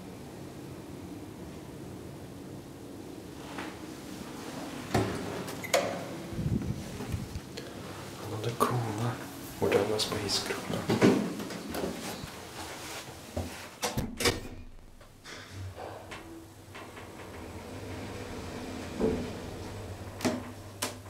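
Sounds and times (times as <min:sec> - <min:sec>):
elevator drive hum: 0:00.0 - 0:21.0
elevator mechanical clunks and clicks: 0:04.9 - 0:06.2, 0:13.8 - 0:21.0.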